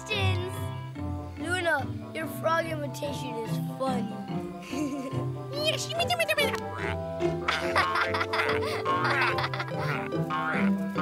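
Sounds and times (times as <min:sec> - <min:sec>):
light background music: 0:00.0 - 0:11.0
cartoon characters laughing: 0:04.6 - 0:05.2, 0:05.8 - 0:10.7.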